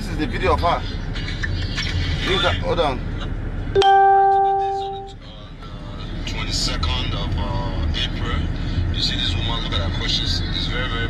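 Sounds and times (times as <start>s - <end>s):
electronic chime tone: 3.8s - 5.1s.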